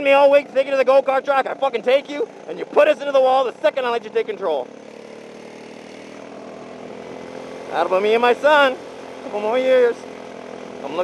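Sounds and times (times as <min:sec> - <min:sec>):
go-kart engine running: 0:00.0 - 0:11.0
road and wind noise: 0:00.0 - 0:11.0.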